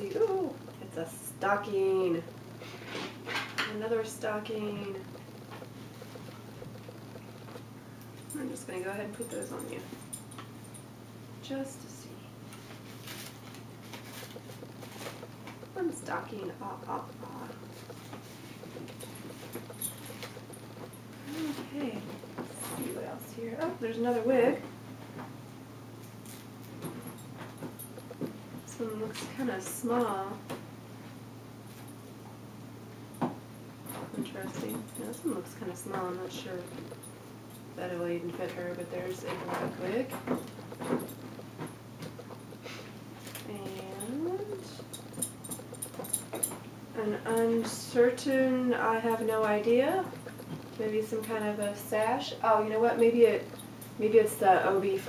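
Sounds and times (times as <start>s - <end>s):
low steady hum: 0.0s - 55.0s
fabric and wrapping crinkling: 12.4s - 24.6s, 34.0s - 55.0s.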